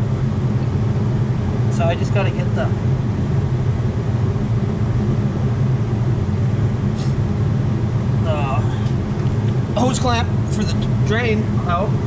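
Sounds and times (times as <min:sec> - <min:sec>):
loud low machine hum: 0:00.0 - 0:12.0.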